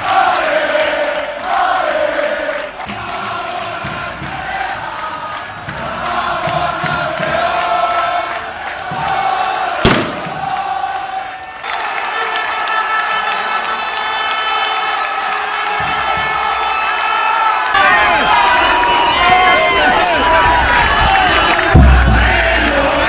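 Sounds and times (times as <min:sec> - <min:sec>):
crowd chanting: 0:00.0 - 0:23.0
sharp bang: 0:09.8 - 0:10.6.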